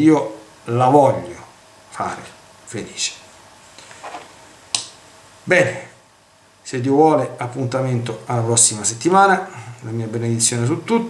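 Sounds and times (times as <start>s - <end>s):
hissy breath: 9.5s - 9.8s.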